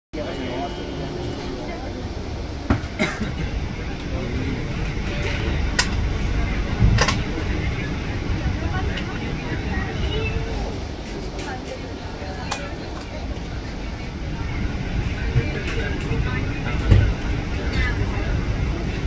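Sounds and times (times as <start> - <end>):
train rumble: 0.1 - 19.0
people talking: 0.2 - 19.0.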